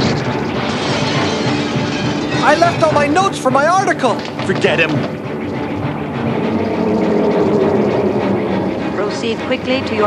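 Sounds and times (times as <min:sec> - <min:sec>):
steady rumbling: 0:00.0 - 0:10.0
low hum: 0:05.0 - 0:10.0.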